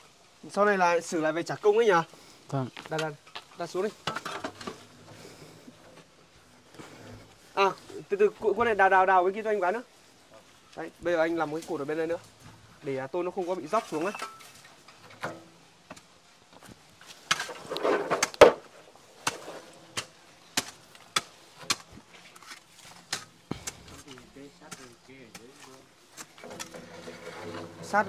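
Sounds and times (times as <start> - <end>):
shovel digging stony soil: 19.2 - 28.0
metal roofing sheets handled: 26.4 - 28.0.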